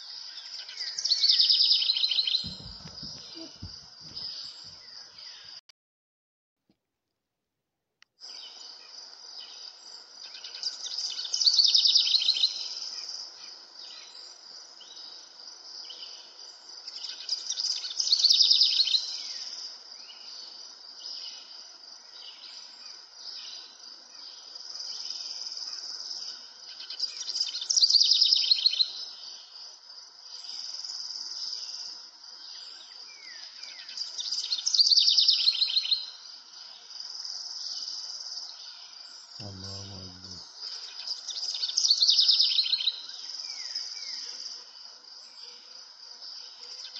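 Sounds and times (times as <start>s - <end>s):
birds chirping: 1.9s - 5.6s, 37.8s - 44.2s.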